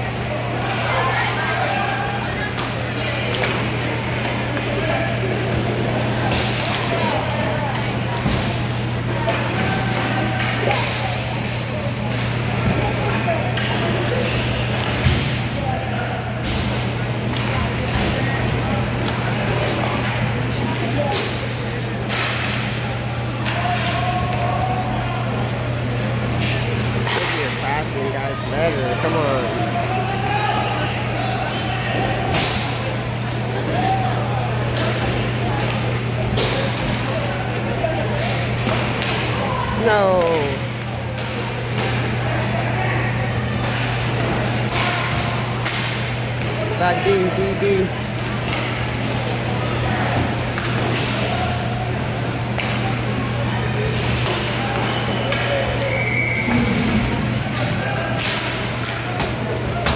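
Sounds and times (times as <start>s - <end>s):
sticks and puck clacking: 22.1s - 22.6s, 27.1s - 27.4s, 57.5s - 59.9s.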